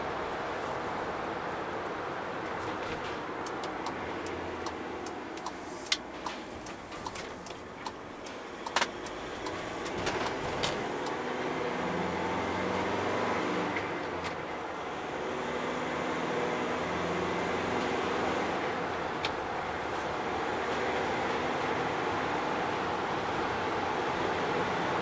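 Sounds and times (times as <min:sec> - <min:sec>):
road noise: 0:00.0 - 0:25.0
van engine running: 0:00.0 - 0:25.0
sharp clicks and knocks: 0:02.5 - 0:11.2.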